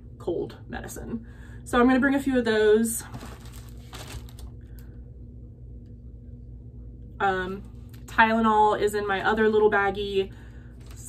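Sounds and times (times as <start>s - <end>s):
plastic bag crinkling: 3.0s - 4.6s, 10.8s - 11.0s.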